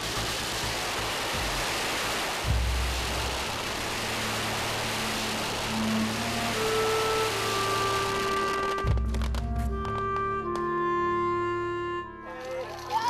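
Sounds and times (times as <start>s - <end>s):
firecrackers crackling: 0.0s - 10.7s
background music with low drone: 0.0s - 13.0s
held melody notes: 5.7s - 12.6s.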